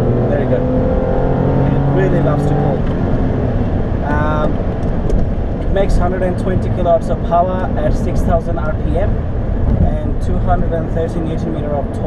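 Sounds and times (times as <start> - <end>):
car engine: 0.0 - 12.0
road noise inside car: 0.0 - 12.0.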